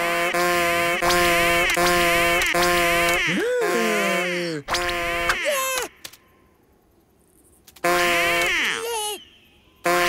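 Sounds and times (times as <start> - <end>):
small clicks: 4.8 - 6.3, 7.5 - 8.5.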